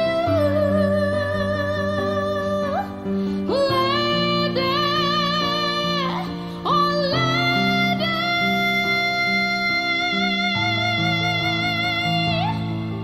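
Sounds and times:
woman singing with vibrato: 0:00.0 - 0:13.0.

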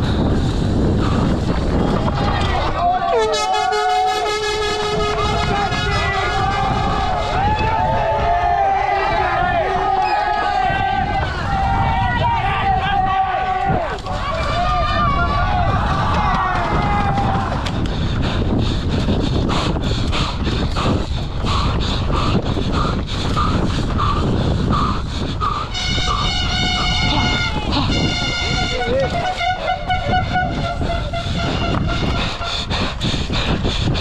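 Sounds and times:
bike trail rumble: 0:00.0 - 0:34.0
wind on microphone: 0:00.0 - 0:34.0
spectators shouting: 0:01.9 - 0:17.8
loud horn blast: 0:03.2 - 0:07.2, 0:25.7 - 0:32.5.

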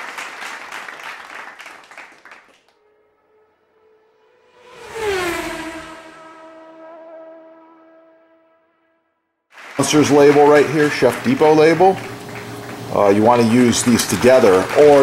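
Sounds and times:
applause-like crackling: 0:00.0 - 0:02.8, 0:09.5 - 0:15.0.

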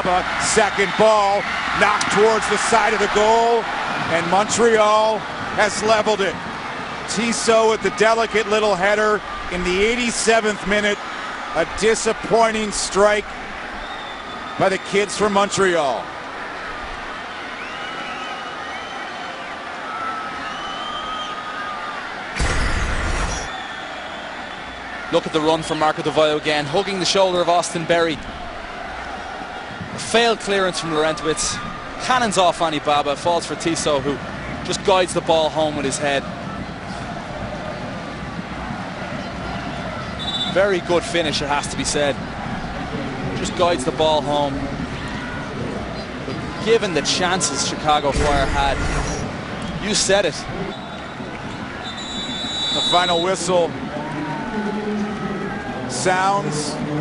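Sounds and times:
stadium crowd noise: 0:00.0 - 0:57.0
referee's whistle blast: 0:22.4 - 0:23.9, 0:40.2 - 0:40.6, 0:51.8 - 0:53.4.

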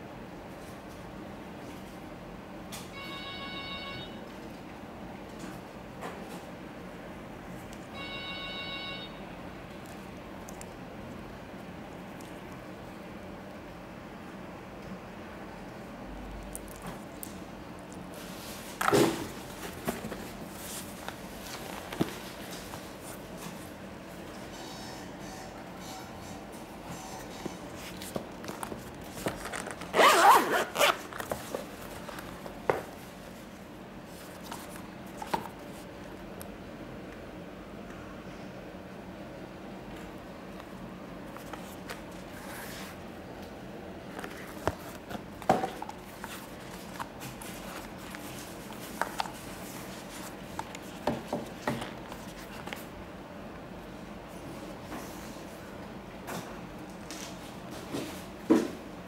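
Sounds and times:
zipper pulled open: 0:29.8 - 0:31.3.

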